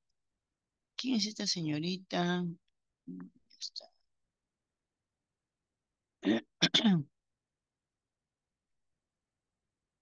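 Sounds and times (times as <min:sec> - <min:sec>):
person clearing throat: 0:06.2 - 0:07.1.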